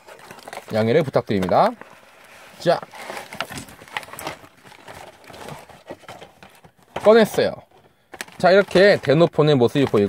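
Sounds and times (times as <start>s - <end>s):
cardboard and plastic rustling: 0.0s - 10.0s.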